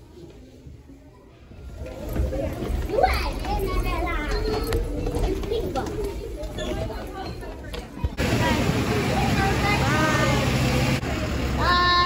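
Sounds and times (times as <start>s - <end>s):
children calling and chattering: 0.0s - 12.0s.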